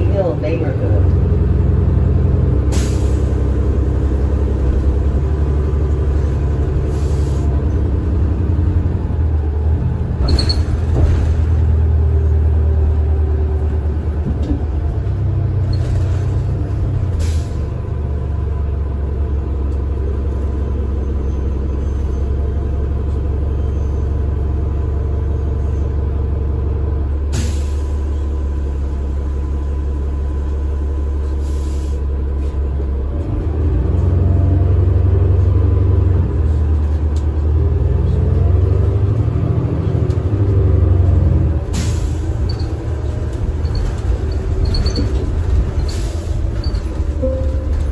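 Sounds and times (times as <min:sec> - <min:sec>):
bus engine droning: 0:00.0 - 0:47.9.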